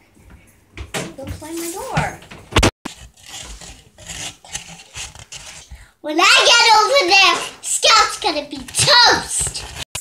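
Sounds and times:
plate scraping against phone: 0:02.9 - 0:05.7.

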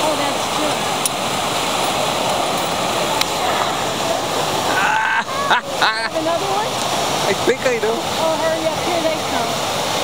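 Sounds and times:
water rushing and splashing: 0:00.0 - 0:10.0.

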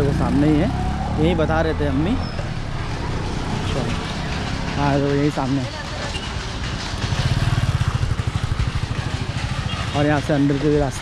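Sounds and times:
motorbike engine pulsing: 0:00.0 - 0:11.0
street traffic noise: 0:00.0 - 0:11.0.

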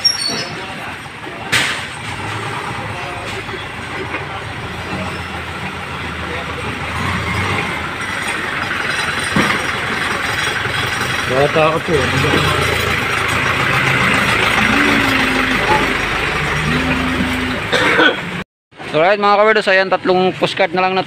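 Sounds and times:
truck engine idling: 0:00.0 - 0:18.4.

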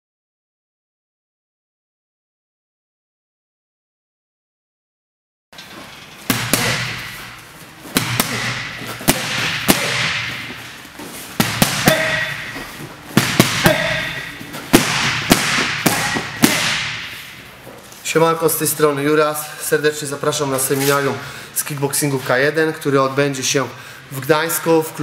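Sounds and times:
punches smacking focus mitts: 0:06.3 - 0:10.7, 0:11.3 - 0:17.2.

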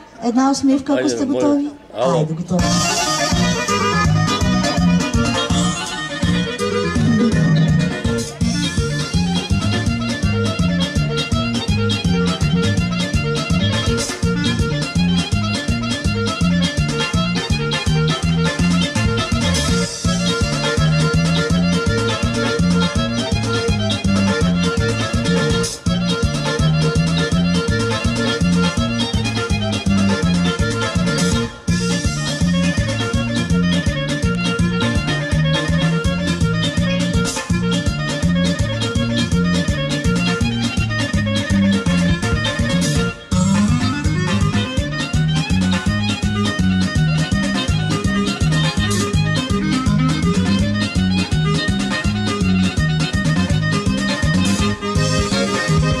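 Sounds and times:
accordion: 0:00.0 - 0:56.0
folk dance music: 0:00.0 - 0:56.0
fiddle: 0:02.6 - 0:56.0.

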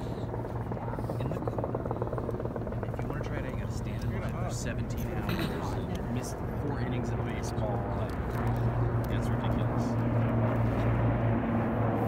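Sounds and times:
helicopter rotor drone: 0:00.0 - 0:12.0
people talking: 0:01.1 - 0:01.7, 0:02.8 - 0:08.1.

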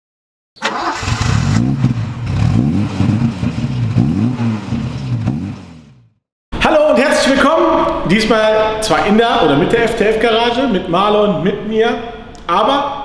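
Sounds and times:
car engine revving: 0:00.7 - 0:06.2.

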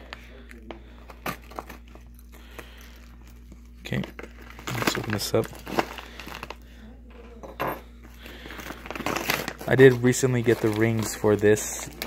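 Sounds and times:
paper envelope tearing: 0:03.9 - 0:06.6, 0:08.6 - 0:12.0
paper rustling: 0:08.3 - 0:12.0.

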